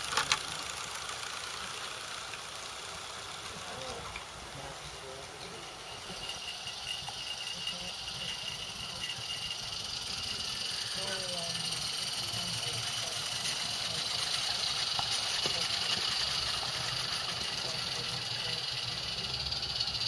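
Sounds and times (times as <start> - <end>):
steam hiss: 0.0 - 20.0
train rumbling on track: 0.0 - 20.0.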